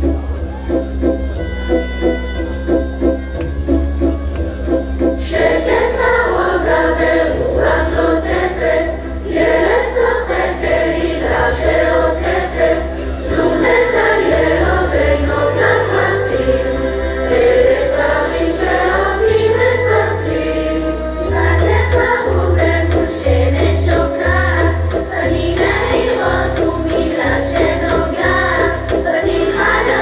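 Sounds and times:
choir singing into microphones: 5.2s - 30.0s.

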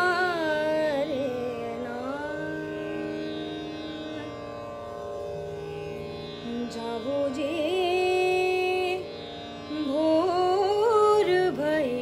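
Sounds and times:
woman singing: 0.0s - 3.1s, 6.4s - 9.1s, 9.7s - 12.0s.

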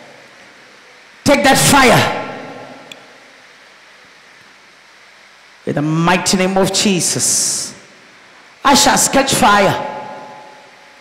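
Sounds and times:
faint room hiss: 0.0s - 11.0s
shout echoing in large hall: 1.2s - 2.9s, 8.6s - 11.0s.

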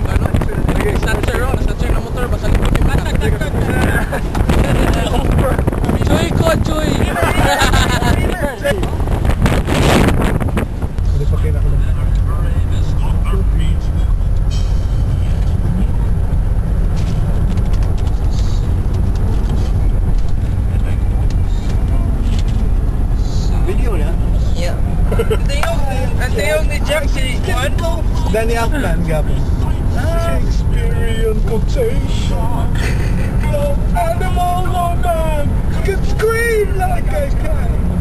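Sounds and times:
car interior rumble: 0.0s - 38.0s
faint voices in a car: 0.0s - 38.0s
outdoor wind noise: 0.0s - 38.0s.

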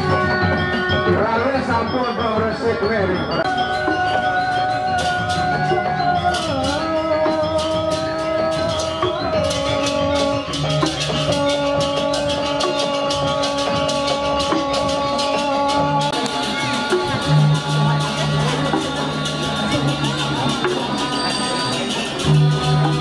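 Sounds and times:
gamelan metal percussion: 0.0s - 23.0s.

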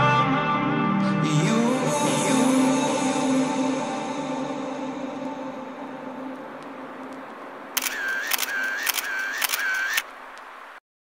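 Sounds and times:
music: 0.0s - 6.4s
camera shutter clicks: 7.8s - 10.1s.

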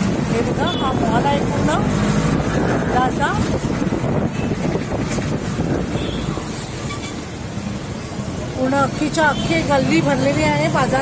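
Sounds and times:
traffic noise: 0.0s - 11.0s.

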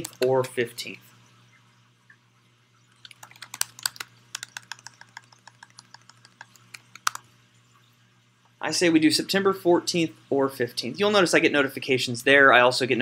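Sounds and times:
laptop keyboard typing: 0.0s - 0.4s, 3.0s - 7.2s.

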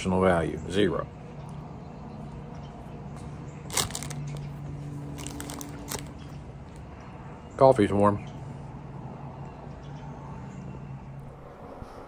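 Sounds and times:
foam cup crackling and clicking: 3.7s - 4.5s, 5.2s - 6.2s.

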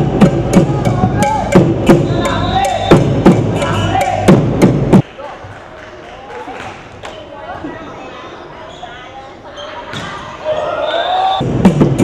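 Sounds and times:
court shoes squeaking: 8.6s - 11.0s.

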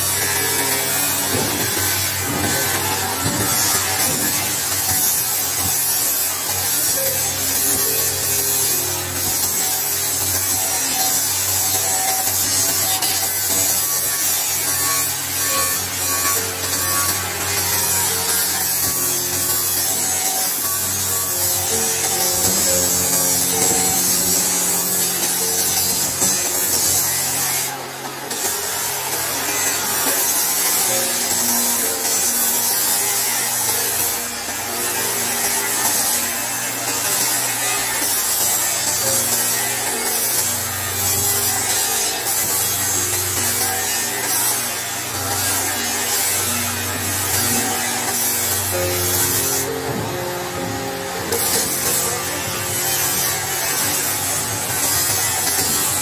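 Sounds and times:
background music with held notes: 0.0s - 56.0s
power tool cutting hiss: 0.0s - 56.0s.

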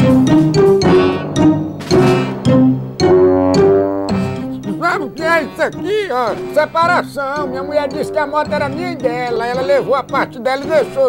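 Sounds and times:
background music notes: 0.0s - 11.0s.

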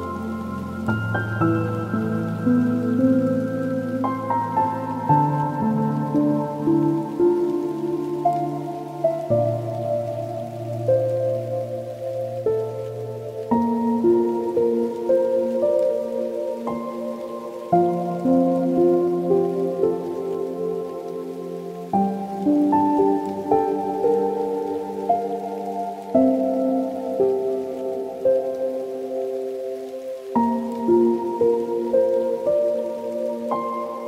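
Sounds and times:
soft solo piano music: 0.0s - 34.0s.

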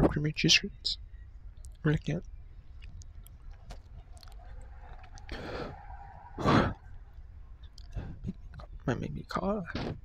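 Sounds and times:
mouth clicks: 1.6s - 5.8s, 6.4s - 8.8s
person chewing: 2.7s - 5.7s, 7.6s - 8.7s
loud sigh: 6.4s - 6.9s.

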